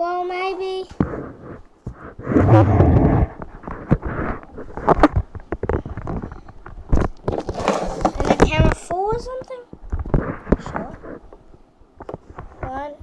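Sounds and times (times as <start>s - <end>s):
loud rough rumbling: 2.3s - 3.4s.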